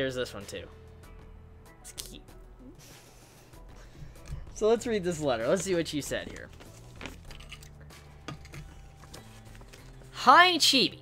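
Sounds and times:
paper crackling: 0:05.4 - 0:07.3.

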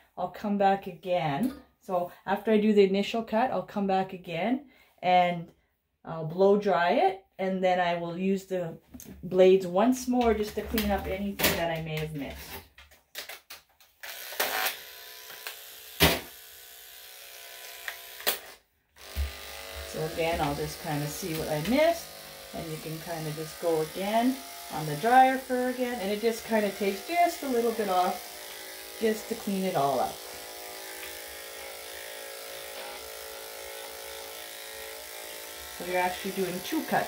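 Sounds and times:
electric clippers buzzing: 0:14.0 - 0:37.0.

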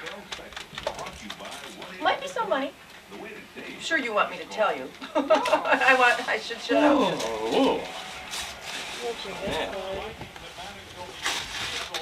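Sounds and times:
low background chatter: 0:00.0 - 0:12.0
wrapping paper rustling: 0:05.4 - 0:12.0.

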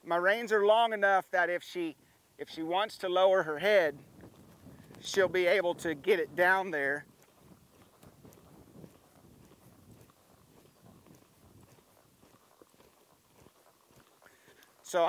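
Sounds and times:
muffled hoofbeats on soft dirt: 0:00.0 - 0:15.0.

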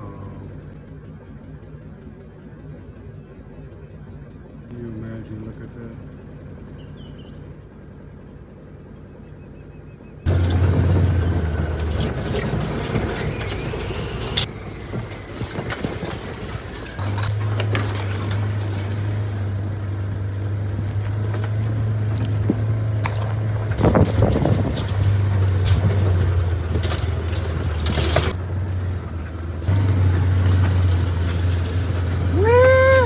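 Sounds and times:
utility vehicle engine hum: 0:00.0 - 0:33.0
faint bird chirps: 0:06.0 - 0:07.5, 0:08.5 - 0:10.3
rattles and knocks over bumps: 0:10.3 - 0:33.0.

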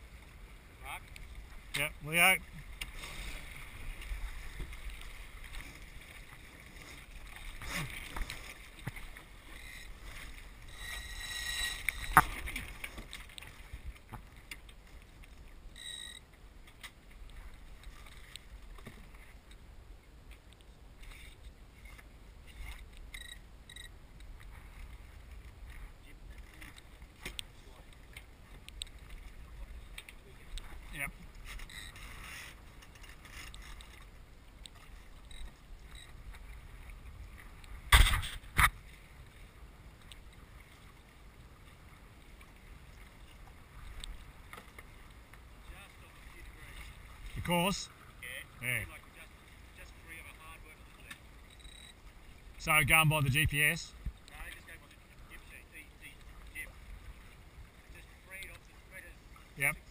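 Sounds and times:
wind and water rumble: 0:00.0 - 0:59.9
faint ticks: 0:13.0 - 0:19.6, 0:20.3 - 0:25.8, 0:26.4 - 0:30.7, 0:31.3 - 0:36.4, 0:39.9 - 0:40.4, 0:42.9 - 0:45.5, 0:51.0 - 0:52.0, 0:54.0 - 0:55.0.

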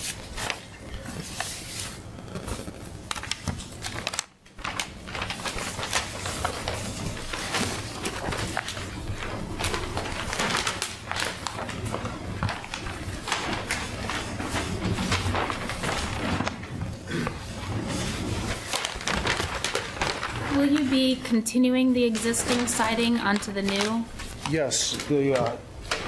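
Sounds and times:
paper rustling: 0:00.0 - 0:26.0.

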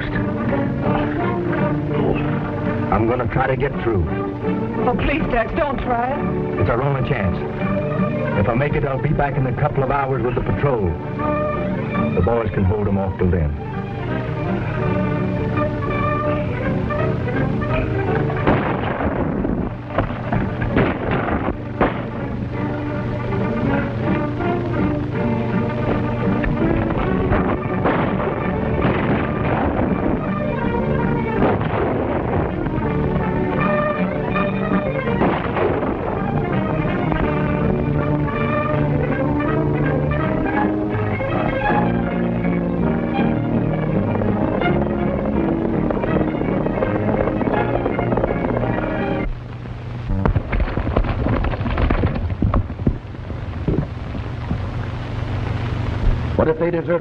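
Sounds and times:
orchestral western film music: 0:00.0 - 0:49.5.

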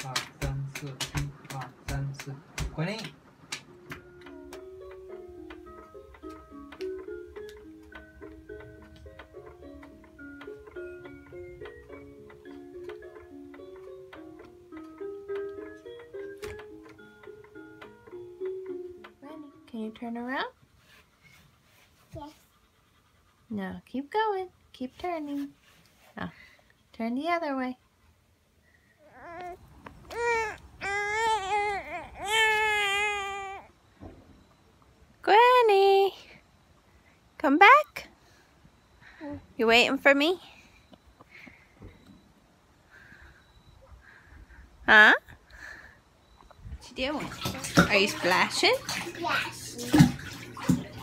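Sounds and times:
electronic lullaby melody: 0:03.7 - 0:20.4, 0:29.0 - 0:33.9.

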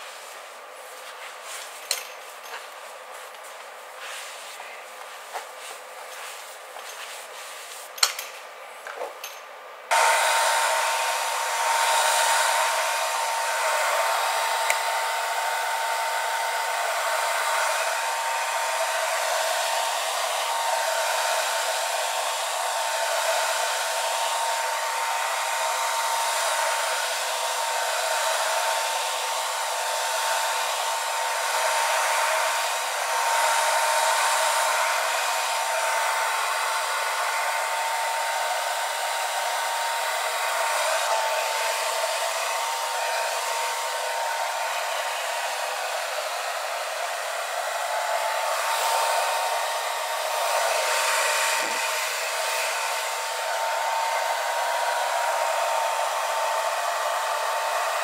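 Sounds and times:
hair dryer blowing: 0:00.0 - 0:08.0, 0:09.9 - 0:58.0.

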